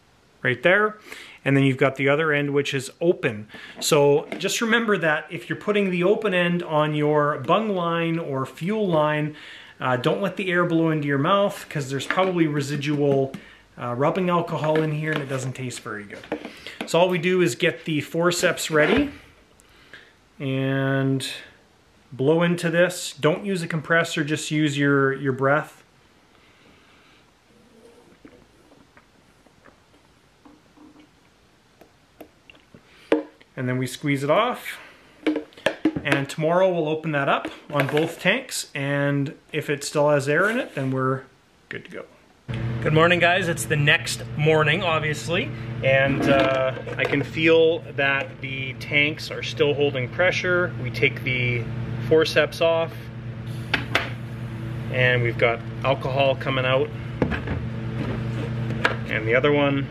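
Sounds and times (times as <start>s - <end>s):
soft hiss of air: 0.0s - 29.3s, 52.3s - 56.3s
steady low hum: 0.0s - 59.9s.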